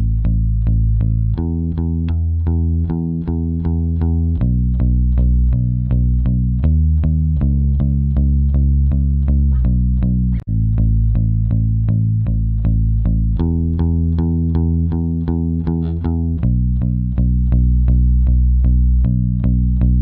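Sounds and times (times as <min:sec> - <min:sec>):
electric bass guitar picked notes: 0:00.0 - 0:20.0.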